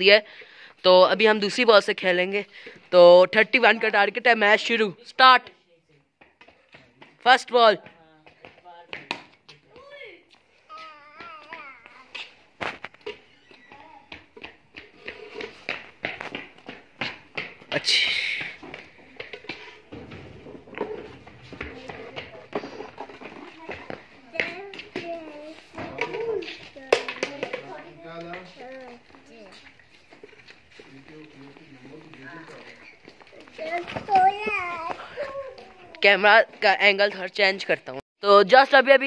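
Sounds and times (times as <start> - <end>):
children calling and talking: 9.7 - 14.7, 21.0 - 36.2.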